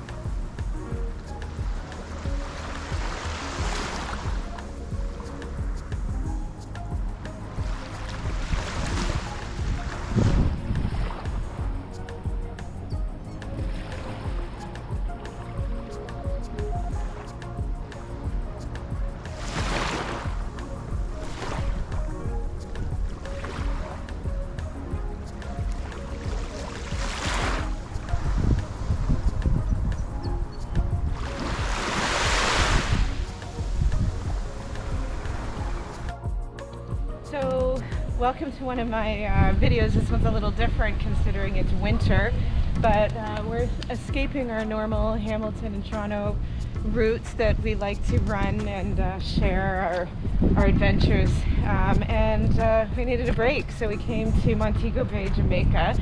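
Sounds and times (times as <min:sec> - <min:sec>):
faint music: 0:00.0 - 0:56.0
wind buffeting microphone: 0:00.0 - 0:56.0
small waves on sand: 0:01.6 - 0:05.8, 0:07.4 - 0:11.8, 0:19.2 - 0:22.1, 0:25.6 - 0:29.5, 0:31.1 - 0:36.1.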